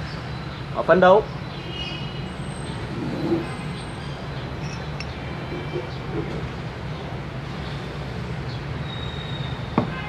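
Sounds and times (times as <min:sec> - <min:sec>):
low rumble of vehicles: 0:00.0 - 0:10.0.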